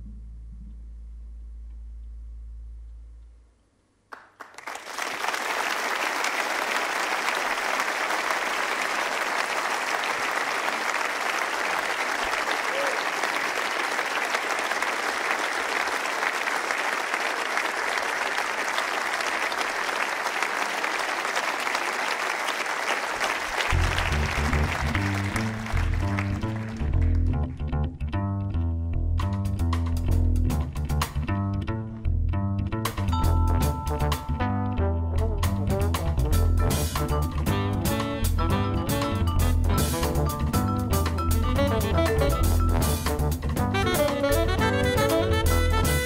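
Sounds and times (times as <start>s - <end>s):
double bass plucking: 0.0s - 3.6s, 23.7s - 46.0s
audience applauding: 4.1s - 27.2s.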